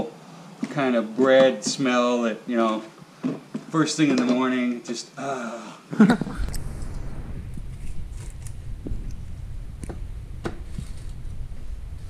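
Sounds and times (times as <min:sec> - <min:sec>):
steady low rumble: 0:06.1 - 0:12.0.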